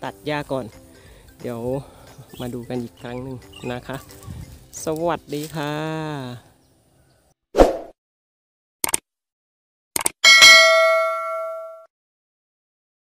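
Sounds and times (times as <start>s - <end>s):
bright bell ding: 10.2s - 11.9s.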